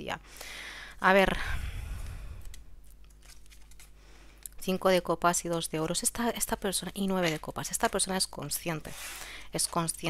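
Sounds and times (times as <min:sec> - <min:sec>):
cards rustling and clicking: 0:02.4 - 0:04.0, 0:07.0 - 0:10.0.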